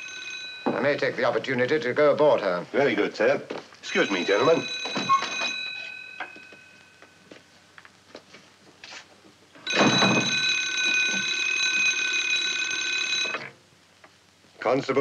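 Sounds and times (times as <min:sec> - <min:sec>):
telephone bell ringing: 0:00.0 - 0:01.1, 0:03.8 - 0:07.2, 0:09.6 - 0:13.6.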